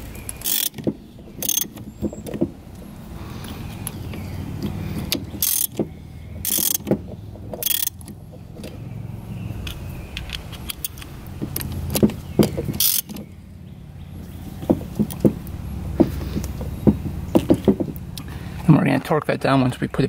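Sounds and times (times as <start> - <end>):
sharp metal clicks: 0.0 - 4.0, 4.6 - 8.8, 9.6 - 13.4
ratchet wrench clicking: 0.4 - 1.8, 5.1 - 5.8, 6.4 - 8.1, 12.8 - 13.2.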